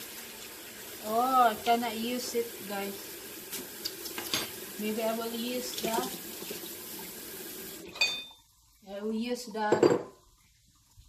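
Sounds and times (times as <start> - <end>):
metal kitchenware clink: 4.3 - 4.5, 7.9 - 8.4.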